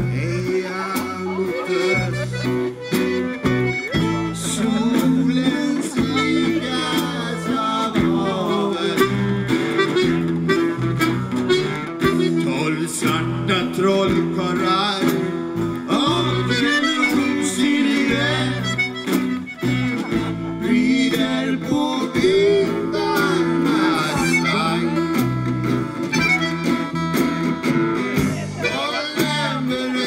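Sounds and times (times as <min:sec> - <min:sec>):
accordion melody: 0:00.0 - 0:30.0
drums: 0:00.0 - 0:30.0
strummed acoustic guitars: 0:00.0 - 0:30.0.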